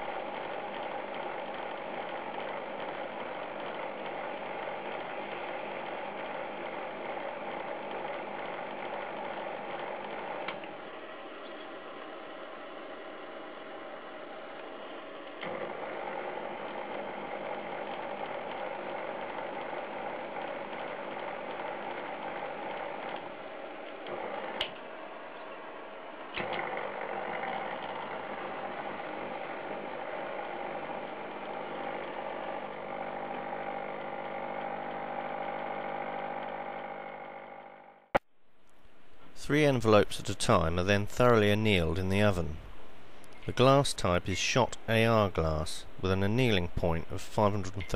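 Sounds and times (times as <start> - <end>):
metal lathe whirring: 0.0 - 38.1.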